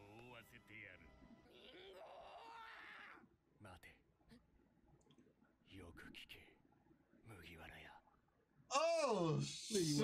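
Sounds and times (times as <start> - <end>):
man speaking in wavering tone: 8.7 - 10.0.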